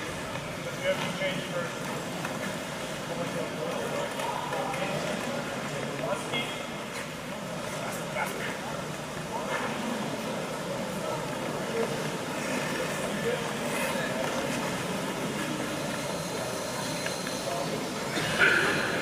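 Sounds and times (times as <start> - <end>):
murmur of voices in echoing hall: 0.0 - 19.0.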